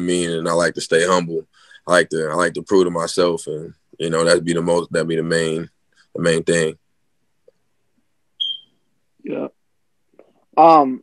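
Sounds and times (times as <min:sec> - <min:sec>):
high-pitched electronic beep: 0:08.4 - 0:08.7.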